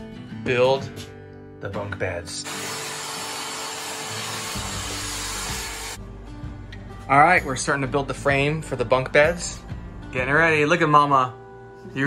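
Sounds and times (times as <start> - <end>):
power tool whirring: 2.4 - 6.0.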